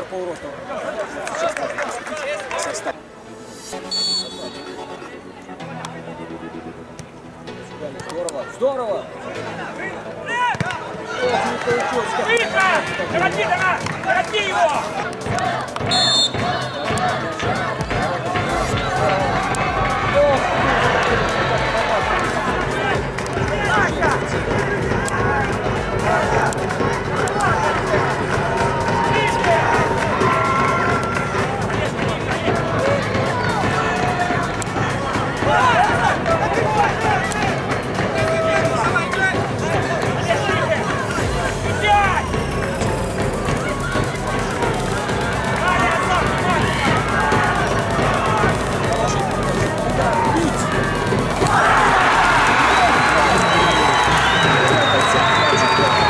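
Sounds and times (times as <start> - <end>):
spectators shouting: 10.2 - 56.0.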